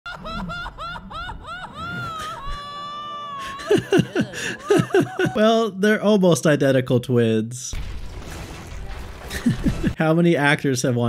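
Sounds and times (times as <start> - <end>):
cartoon character laughing high: 0.1 - 5.5.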